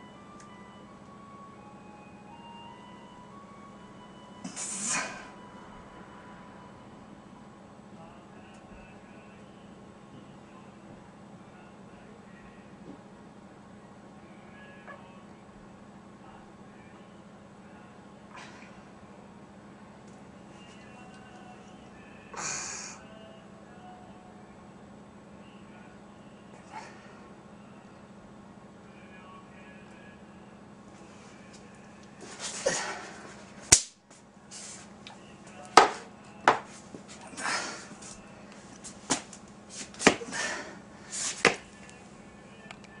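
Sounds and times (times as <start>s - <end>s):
low electrical hum: 0.0s - 43.0s.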